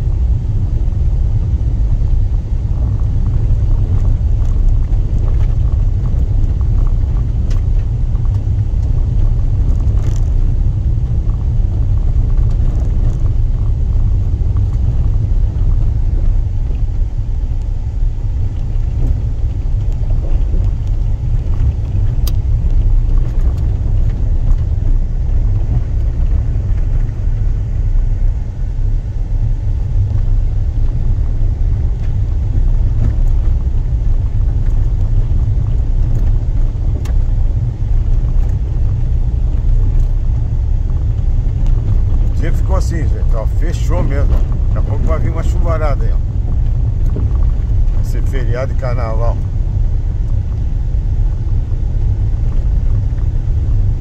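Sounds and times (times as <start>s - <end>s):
car driving on gravel: 0.0s - 54.0s.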